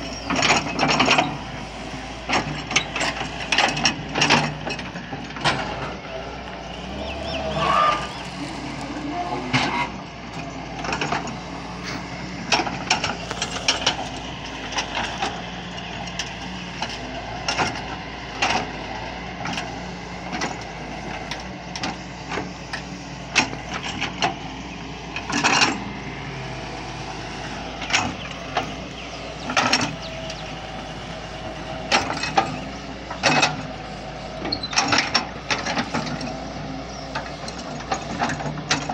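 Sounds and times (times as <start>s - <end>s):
excavator diesel engine running: 0.0s - 38.9s.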